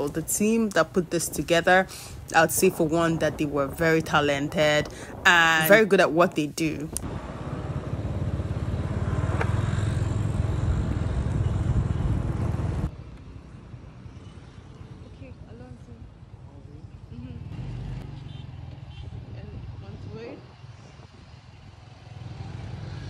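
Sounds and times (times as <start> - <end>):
vehicle engine and road noise: 0.0 - 23.0.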